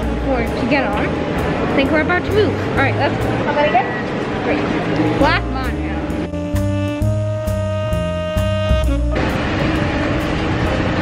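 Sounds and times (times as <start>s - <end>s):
music with held notes and bass: 0.0s - 3.3s, 5.0s - 11.0s
monorail car rumble: 0.0s - 6.2s, 9.0s - 11.0s.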